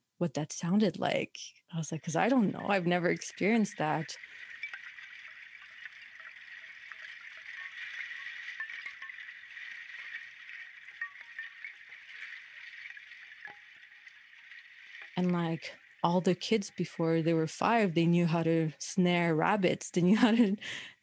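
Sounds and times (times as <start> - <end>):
ice tinkling in flowing water: 2.0 - 18.6.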